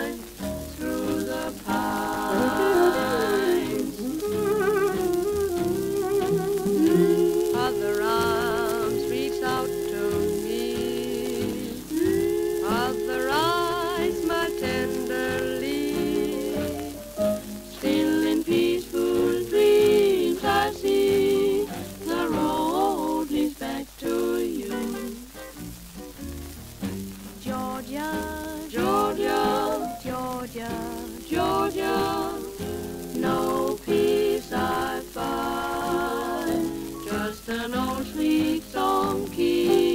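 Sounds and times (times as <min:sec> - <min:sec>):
record surface crackle and hiss: 0:00.0 - 0:39.9
swing band playing slowly: 0:00.0 - 0:39.9.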